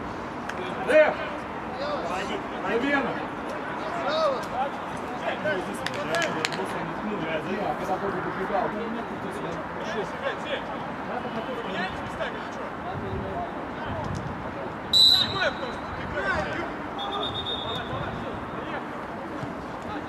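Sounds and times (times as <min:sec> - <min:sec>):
referee whistle blast: 0:14.9 - 0:15.8, 0:17.0 - 0:18.0
players calling out: 0:14.9 - 0:20.0.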